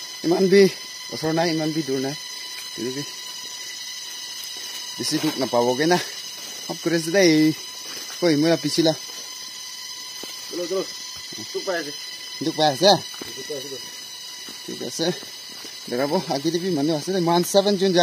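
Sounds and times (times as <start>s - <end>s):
steady high-pitched whine: 0.0s - 18.0s
man talking: 10.5s - 13.9s, 14.7s - 15.2s, 15.9s - 18.0s.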